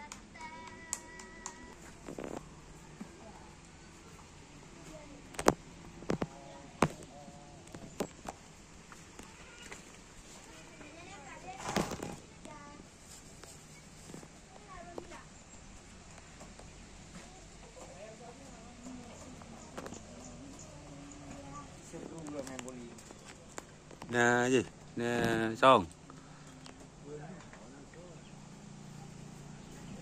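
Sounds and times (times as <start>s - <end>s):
faint indistinct voices: 0.4s - 8.4s, 9.0s - 24.1s.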